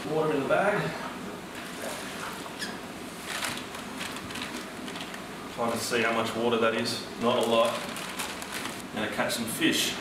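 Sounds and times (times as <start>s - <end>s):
plastic bag rustling: 3.2s - 5.8s, 7.2s - 9.0s
water pouring into plastic bag: 7.2s - 8.9s.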